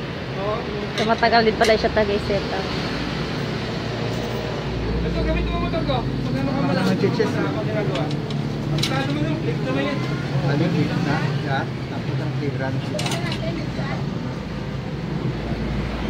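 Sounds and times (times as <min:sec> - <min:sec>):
people talking indistinctly: 0:00.3 - 0:15.5.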